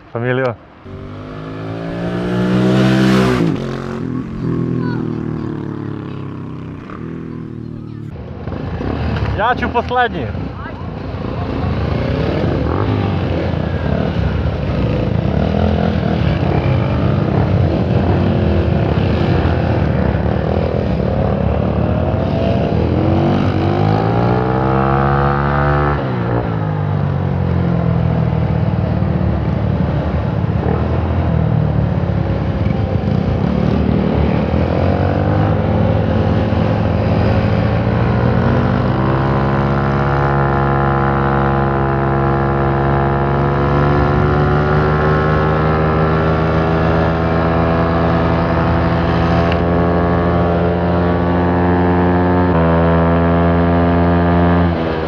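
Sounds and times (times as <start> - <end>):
motorcycle engines: 0.0 - 55.0
scooter engine accelerating: 0.9 - 9.4, 32.5 - 55.0.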